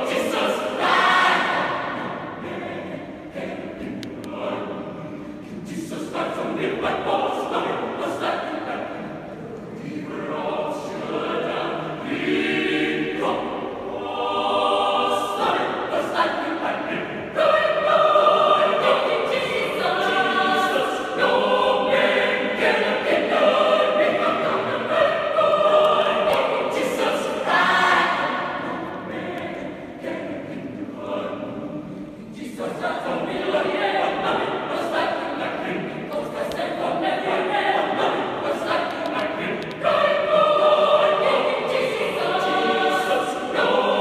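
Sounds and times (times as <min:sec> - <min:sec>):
choir singing: 0:00.0 - 0:44.0.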